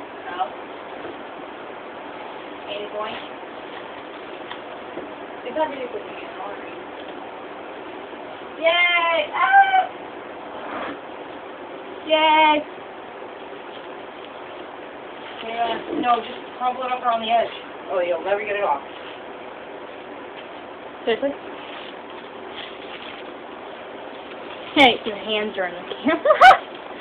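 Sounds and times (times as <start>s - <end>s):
steady background hiss: 0.0s - 27.0s
soft rustle: 18.7s - 20.7s, 21.4s - 25.4s.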